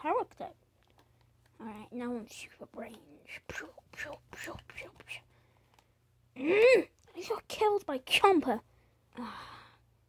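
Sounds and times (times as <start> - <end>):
person whispering: 1.6 - 5.3.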